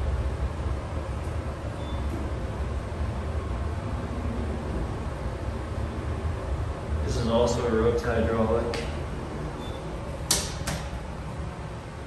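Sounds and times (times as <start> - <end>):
elevator low rumble: 0.0 - 12.0.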